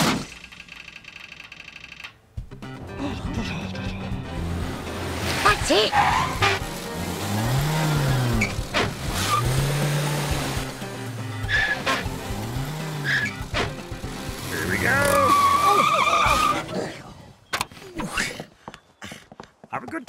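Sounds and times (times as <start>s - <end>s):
cartoon car engine revving: 4.3s - 16.7s
tyres screeching: 5.2s - 16.8s.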